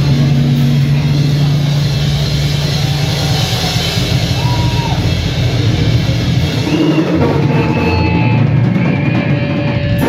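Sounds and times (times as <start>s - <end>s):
heavy metal band playing live: 0.0s - 10.0s.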